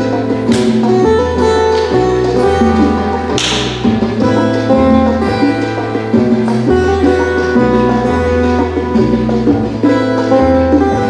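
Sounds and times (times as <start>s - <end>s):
plucked string melody: 0.0s - 11.0s
stepping bass line: 0.0s - 11.0s
noisy percussion stroke: 0.4s - 8.0s.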